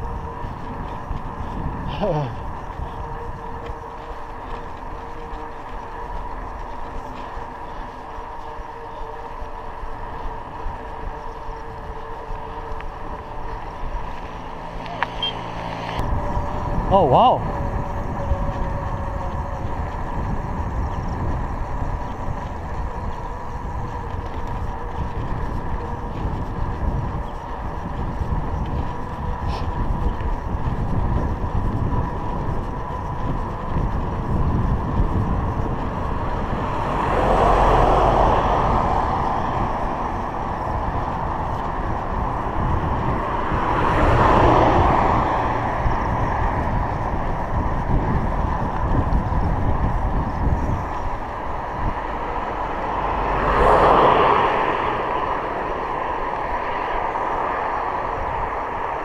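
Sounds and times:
bicycle tyres on asphalt: 0.0 - 59.0
vehicle passing: 0.0 - 59.0
wind on microphone: 0.0 - 59.0.

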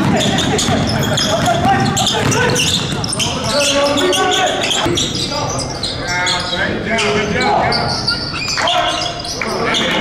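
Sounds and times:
ball bouncing on hardwood court: 0.0 - 3.2
players calling out: 0.0 - 10.0.

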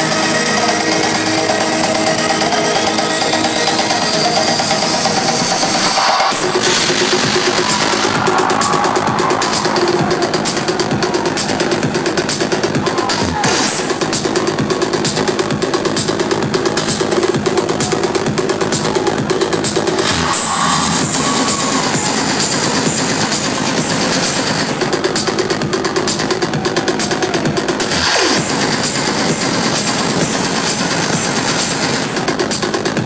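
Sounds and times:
electronic dance music: 0.0 - 33.0.

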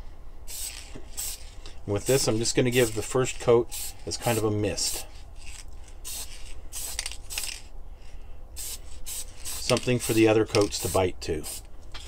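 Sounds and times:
spray can hissing: 0.5 - 7.7, 8.6 - 11.7.

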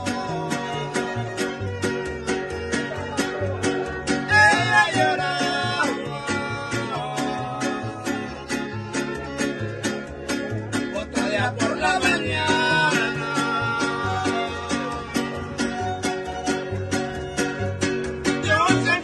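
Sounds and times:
men singing: 0.0 - 1.7, 4.2 - 16.1, 18.2 - 19.0
string group playing lively song: 0.0 - 19.0.

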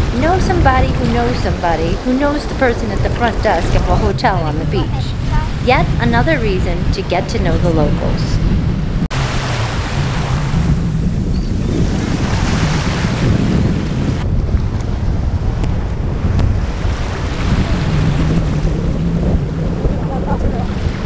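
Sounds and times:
heavy rumble: 0.0 - 21.0
surf breaking on reef: 0.0 - 21.0
wind buffeting microphone: 0.0 - 21.0.

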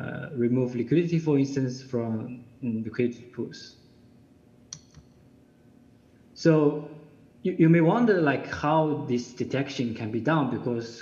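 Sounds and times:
computer mouse click: 4.7 - 5.1.

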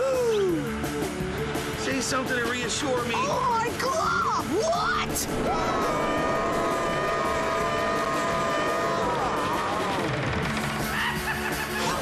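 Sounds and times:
low music: 0.0 - 10.5
roller coaster rushing: 4.5 - 12.0
cartoon characters screaming: 4.7 - 10.2.

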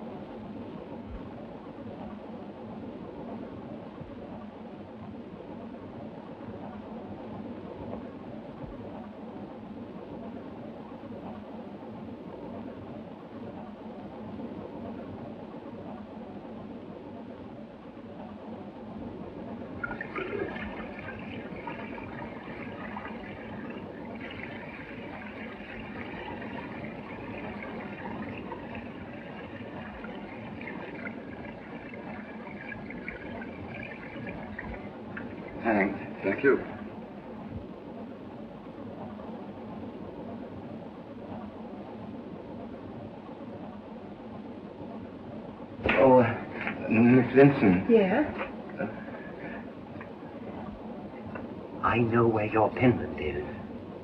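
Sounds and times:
water running into washbasin: 19.8 - 37.2.

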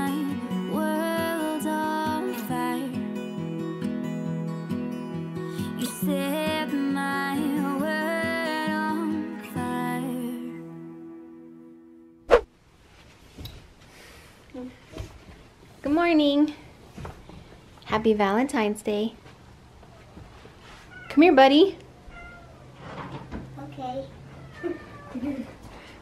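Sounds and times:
soft background music: 0.0 - 12.2
short sharp sound: 12.3 - 12.5.

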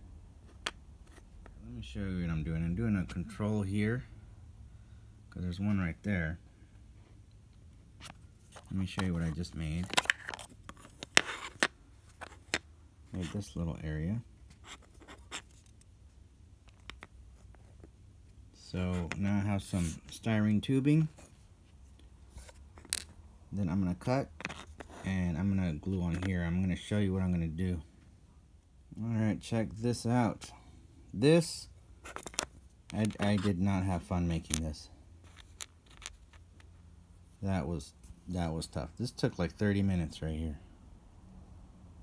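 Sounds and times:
low steady hum: 0.0 - 42.0
plastic part scratching on cutting mat: 8.0 - 13.4, 14.5 - 15.7, 24.3 - 25.1.

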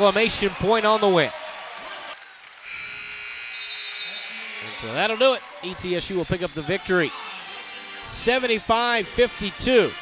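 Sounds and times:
arena horn buzzing: 2.6 - 5.0.

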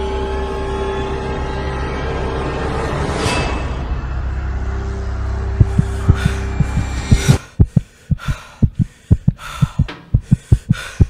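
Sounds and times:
low droning rumble: 4.4 - 10.3
racing heartbeat thumps: 5.6 - 11.0.

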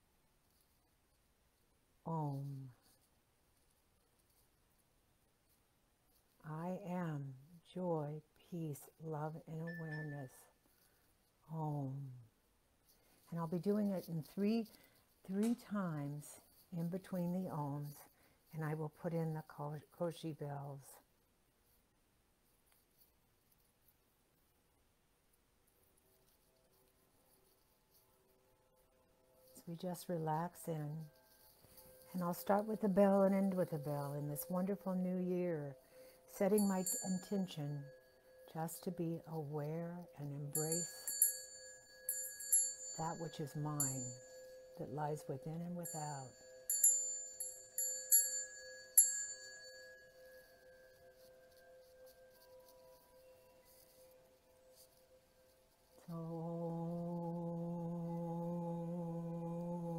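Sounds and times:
faint thin steady tones: 0.0 - 59.9
chimes tinkling: 9.6 - 10.5, 29.4 - 56.0.

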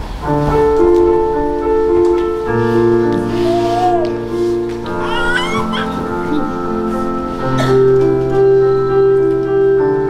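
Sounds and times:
piano chords: 0.0 - 10.0
high voice singing: 3.3 - 4.3.

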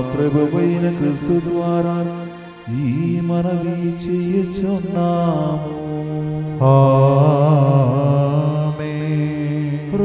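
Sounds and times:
sustained musical accompaniment: 0.0 - 10.0.

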